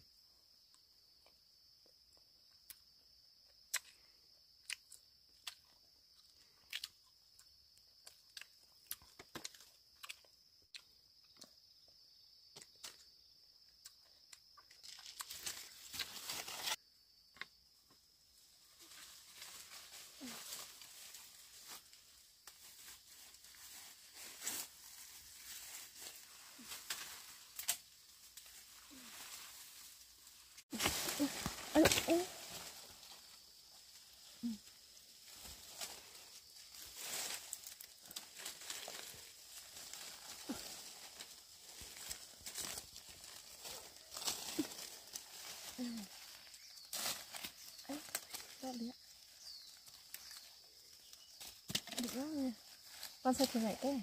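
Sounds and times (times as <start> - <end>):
leaves and twigs rustling: 14.6 - 16.8, 18.0 - 54.0.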